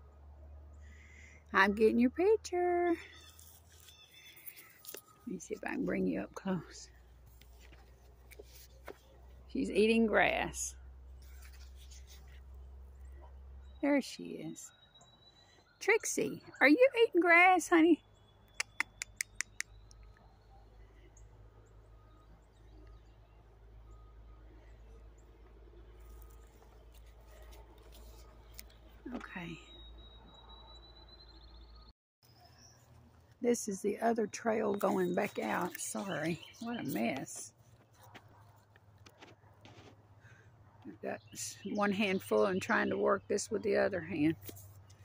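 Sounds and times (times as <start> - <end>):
faint bird chirps: 13.0 - 16.7, 17.9 - 33.0
sharp clicks: 18.5 - 20.2.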